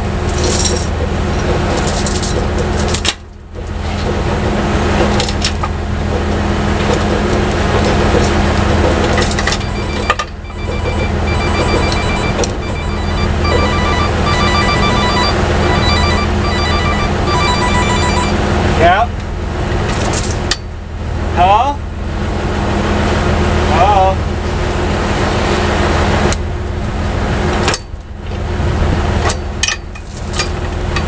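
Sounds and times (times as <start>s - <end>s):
truck engine idling: 0.9s - 19.8s
phone ringtone beeping: 9.4s - 18.6s.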